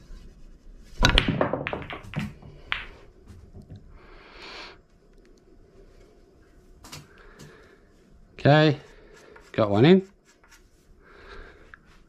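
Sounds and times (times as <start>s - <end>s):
balls knocking off cushions: 1.0s - 3.7s
cue ball cracking into balls: 1.0s - 3.8s
pool balls clicking: 1.0s - 3.9s.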